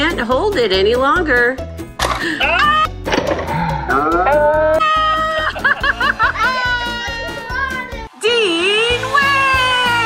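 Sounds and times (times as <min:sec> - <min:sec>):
background music with beat: 0:01.6 - 0:08.0
excited voices crying out: 0:03.9 - 0:08.1.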